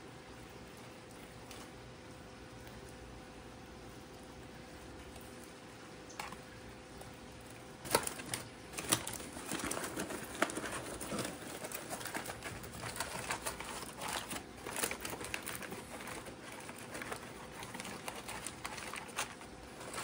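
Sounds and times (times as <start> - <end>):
aluminium foil crinkling: 6.1 - 20.0.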